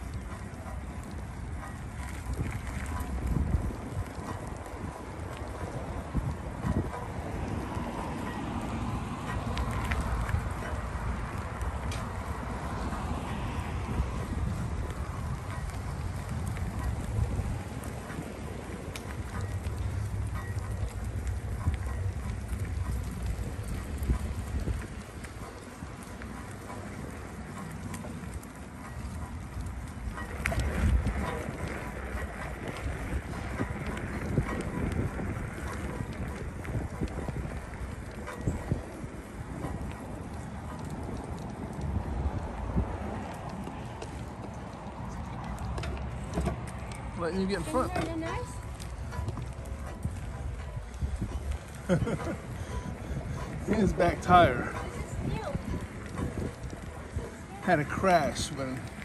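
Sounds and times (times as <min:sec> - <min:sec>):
tyres rumbling on paved path: 0:00.0 - 0:59.0
wind buffeting microphone: 0:00.0 - 0:59.0.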